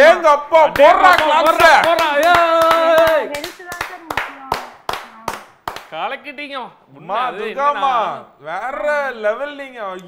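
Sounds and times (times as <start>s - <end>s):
man clapping hands: 0.8s - 5.9s.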